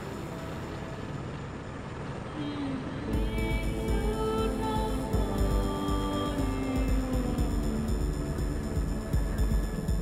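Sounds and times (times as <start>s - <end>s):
helicopter cabin engine and rotor: 0.0s - 10.0s.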